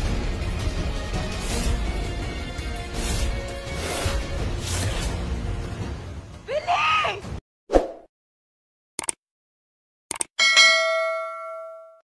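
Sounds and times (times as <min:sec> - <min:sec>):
bell-like ding: 0:10.4 - 0:12.0.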